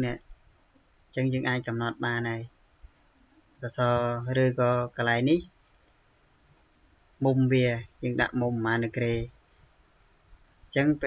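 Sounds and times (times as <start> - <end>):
man's voice: 1.2 - 2.4, 3.6 - 5.4, 7.2 - 9.3, 10.8 - 11.0
faint computer mouse click: 5.6 - 6.0.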